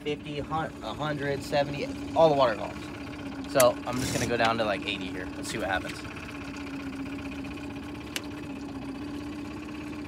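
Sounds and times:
outboard motor idling: 0.0s - 10.0s.

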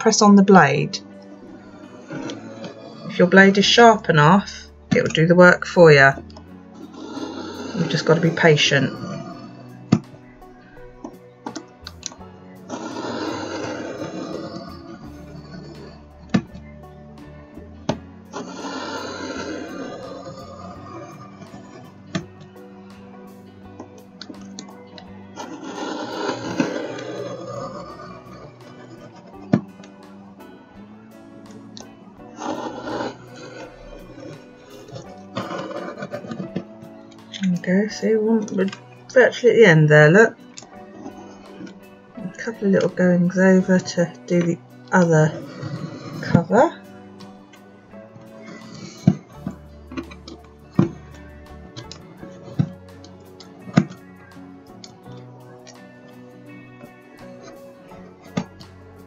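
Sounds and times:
background music: 0.0s - 59.0s
craft knife cutting paper: 11.4s - 16.5s, 18.4s - 22.4s, 25.4s - 30.0s, 31.7s - 37.3s.

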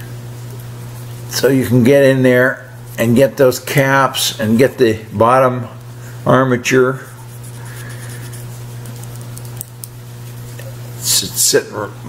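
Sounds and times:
steady low hum: 0.0s - 12.0s
abrasive strip scratching metal: 7.0s - 11.0s.

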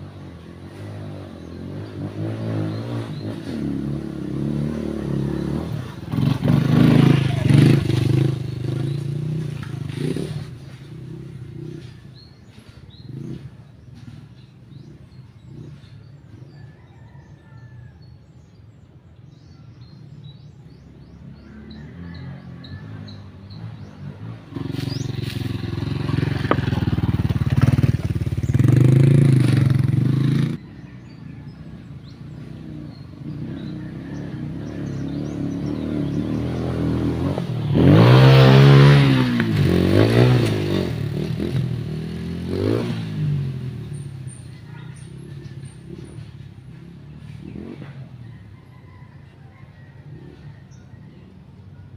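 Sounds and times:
dirt bike engine passing: 0.0s - 17.6s, 20.7s - 51.3s.

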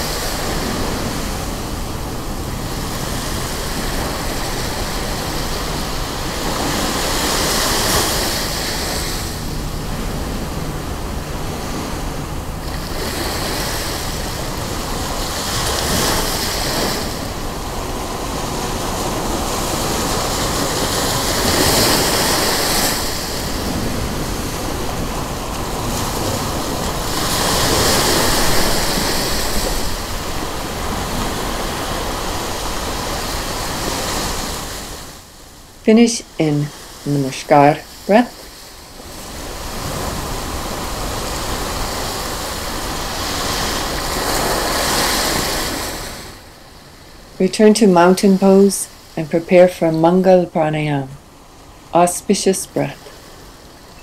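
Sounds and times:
ocean surf breaking: 0.0s - 54.0s.

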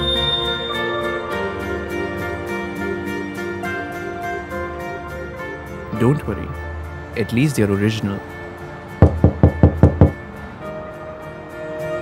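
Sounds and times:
knuckles knocking on a door: 9.0s - 10.2s.

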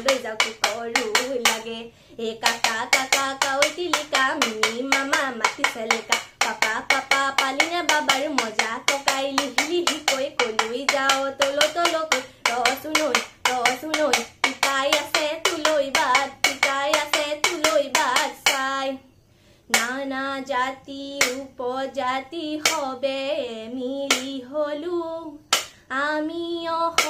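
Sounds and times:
bamboo clapper clacking: 0.0s - 18.8s, 21.2s - 21.5s, 22.6s - 22.9s, 24.1s - 24.4s, 25.5s - 25.8s
young woman singing: 0.0s - 19.1s, 19.7s - 27.0s.

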